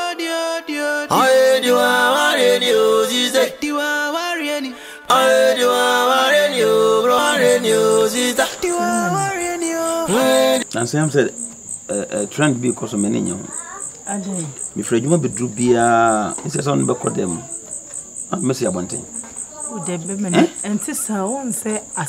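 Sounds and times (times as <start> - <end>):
crickets chirping: 0.0 - 22.0
people talking: 6.6 - 11.3, 11.9 - 17.6, 18.4 - 22.0.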